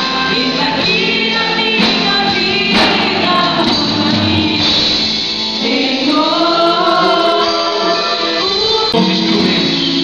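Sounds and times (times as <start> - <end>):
band with electric guitars: 0.0 - 10.0
singers holding notes: 0.0 - 10.0.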